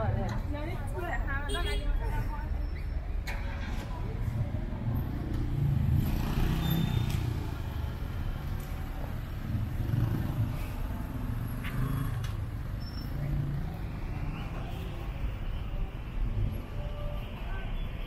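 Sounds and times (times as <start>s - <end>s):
traffic engines rumbling: 0.0s - 18.0s.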